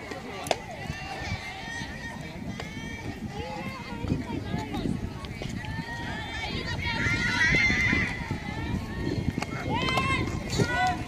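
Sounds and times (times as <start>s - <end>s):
distant people talking and calling: 0.0s - 11.0s.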